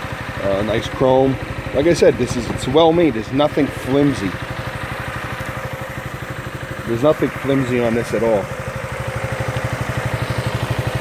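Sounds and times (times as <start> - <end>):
scooter engine idling: 0.0 - 11.0.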